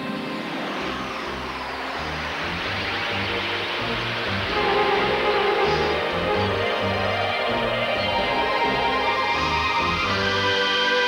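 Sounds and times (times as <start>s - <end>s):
synthesised spaceship whoosh: 0.0s - 10.6s
electronic sci-fi music: 0.0s - 11.0s
low bass notes: 0.8s - 10.8s.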